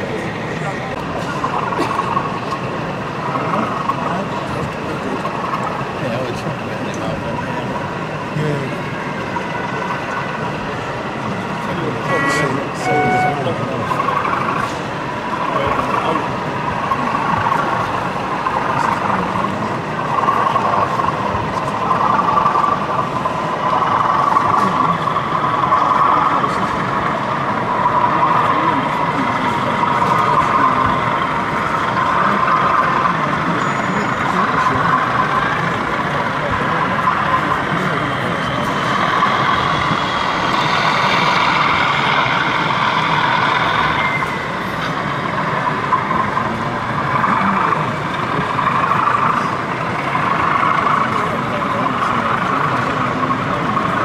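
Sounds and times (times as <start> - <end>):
crowd chatter: 0.0 - 54.0
model diesel engine sound: 0.0 - 54.0.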